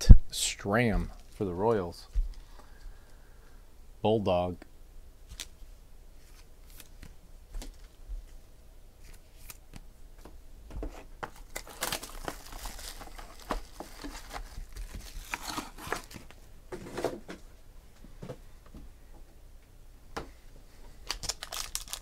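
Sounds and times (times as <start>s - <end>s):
foil wrapper crinkling: 11.3s - 16.3s, 21.0s - 22.0s.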